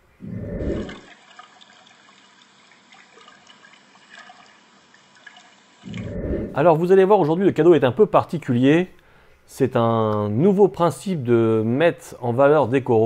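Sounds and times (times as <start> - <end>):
aquarium water trickling: 0.0 - 7.0
low rumble: 5.9 - 6.8.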